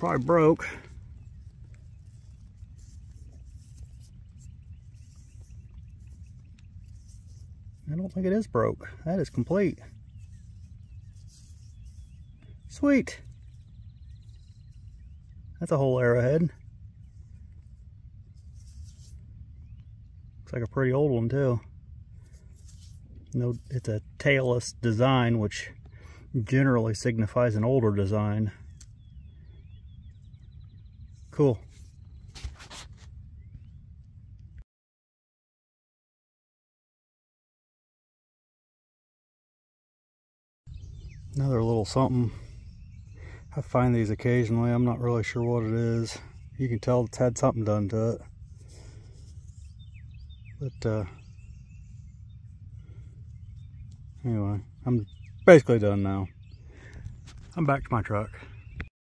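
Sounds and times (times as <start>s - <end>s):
fingers scratching in dry soil: 0.0s - 15.4s, 16.0s - 20.0s, 22.1s - 24.9s, 31.0s - 33.3s, 43.5s - 56.2s, 56.8s - 58.0s
low steady rumble: 0.0s - 32.3s, 40.7s - 58.9s
distant bird chirps and trill: 0.0s - 34.2s, 40.7s - 58.9s.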